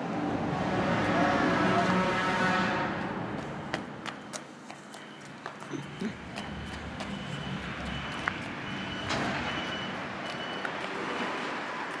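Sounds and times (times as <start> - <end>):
traffic noise: 0.0 - 12.0
reversing alarm beeping: 4.9 - 10.9.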